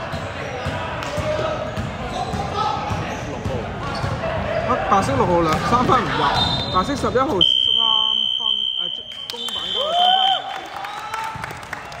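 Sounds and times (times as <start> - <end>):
players' voices: 0.0 - 11.6
referee whistle long blast: 7.4 - 10.4.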